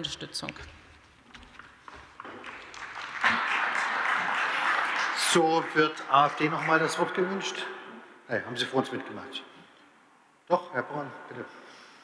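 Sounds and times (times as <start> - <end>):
applause: 1.9 - 7.7.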